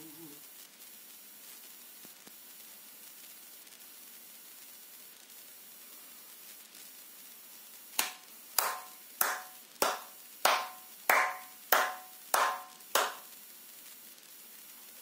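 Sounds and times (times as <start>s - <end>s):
hand claps on a steady beat: 8.0s - 13.3s.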